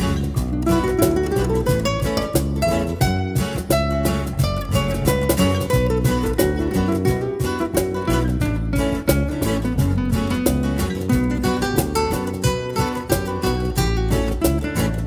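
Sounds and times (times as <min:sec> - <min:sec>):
guitar-led music with steady beat: 0:00.0 - 0:15.0.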